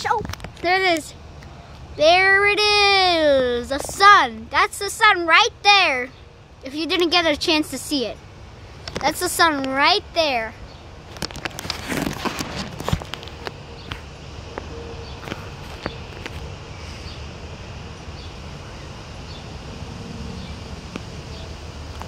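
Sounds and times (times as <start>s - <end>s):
steady background hiss: 0.0s - 22.0s
phone and glasses being handled: 11.1s - 13.6s.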